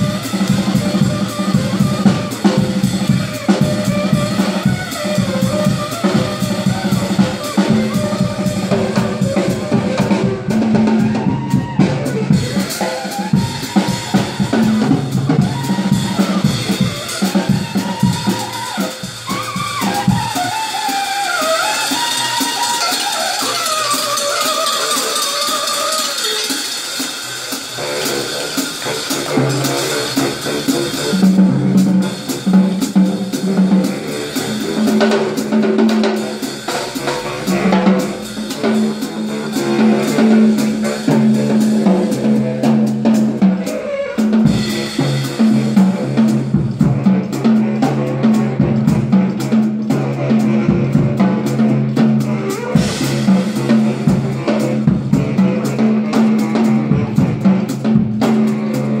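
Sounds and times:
drum kit groove: 0.0 - 59.0
saxophone melody: 0.0 - 59.0.

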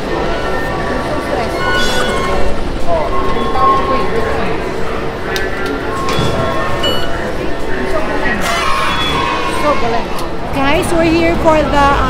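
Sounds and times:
machinery din: 0.0 - 9.2
crowd noise: 0.0 - 12.0
scattered voices: 0.0 - 12.0.

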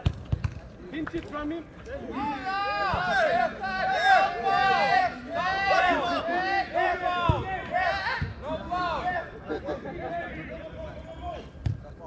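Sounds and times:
players shouting: 2.0 - 11.6.

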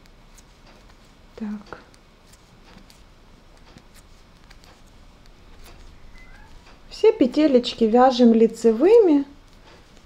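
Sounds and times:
faint high-pitched call: 6.0 - 6.6.

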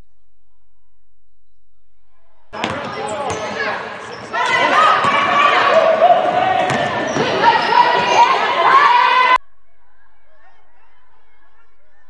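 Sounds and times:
voices of players and spectators: 2.5 - 9.4
basketball bouncing on hardwood: 2.6 - 3.4, 6.6 - 7.4.

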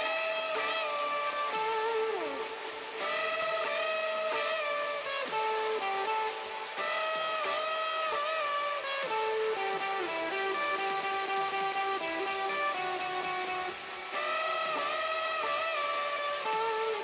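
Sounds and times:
electric guitar strumming chords: 0.0 - 17.0.

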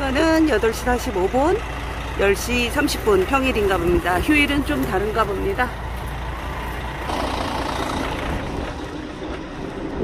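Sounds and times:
heavy vehicle engine rumbling: 0.0 - 10.0
rushing noise: 6.4 - 10.0.

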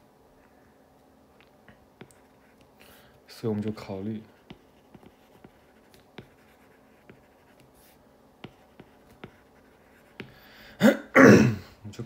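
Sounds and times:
cough-like vocal burst: 10.8 - 11.7.

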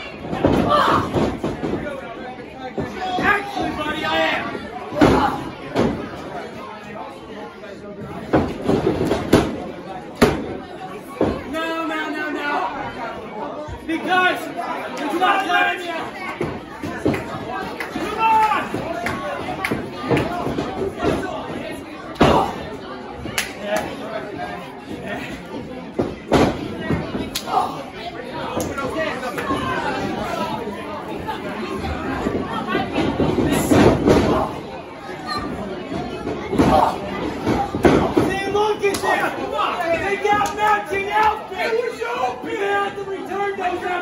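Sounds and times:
spectators talking and calling out: 0.0 - 44.0
people shouting: 0.6 - 1.2, 18.0 - 18.9.

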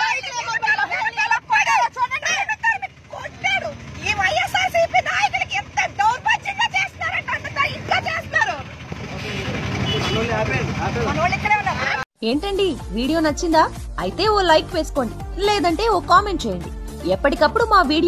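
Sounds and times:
women talking: 0.0 - 8.7, 11.2 - 18.0
vehicle engine and road rumble: 0.0 - 18.0.

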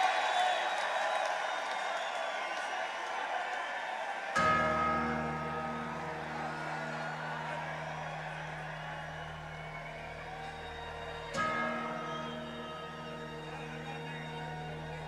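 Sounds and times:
crowd noise: 0.0 - 15.0.

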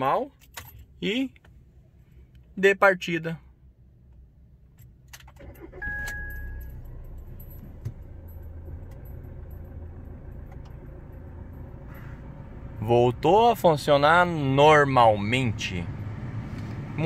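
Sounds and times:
diesel engine cranking and idling: 3.6 - 17.0
ignition key clicks: 4.1 - 9.2, 10.4 - 10.8
short electronic beep: 5.8 - 6.8.

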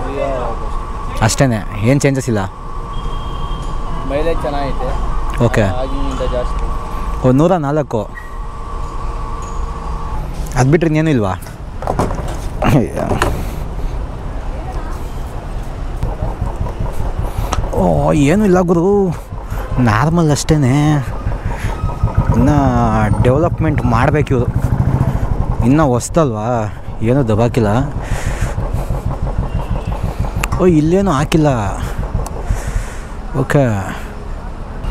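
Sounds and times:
man talking: 1.2 - 2.5, 12.6 - 13.3, 17.7 - 21.2, 22.3 - 24.6, 25.5 - 28.6, 30.4 - 32.0, 33.3 - 34.1
motorcycle engine running: 16.0 - 33.6
fuel pump humming and whining: 16.0 - 34.6.

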